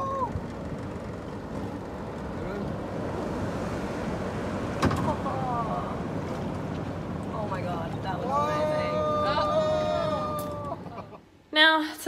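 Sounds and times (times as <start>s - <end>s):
waves breaking on a reef: 0.0s - 11.2s.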